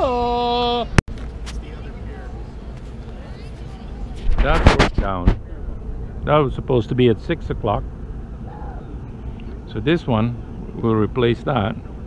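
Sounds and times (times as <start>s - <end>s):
distant chatter of voices: 0.0s - 12.0s
steady low rumble: 1.1s - 12.0s.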